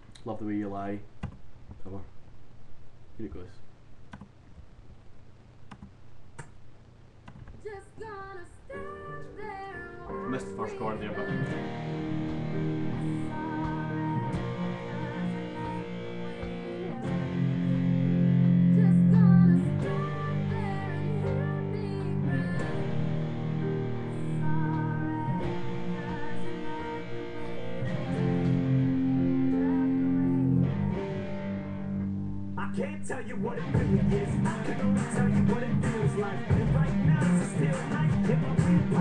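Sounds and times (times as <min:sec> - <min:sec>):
guitar playing chords: 0:08.8 - 0:39.0.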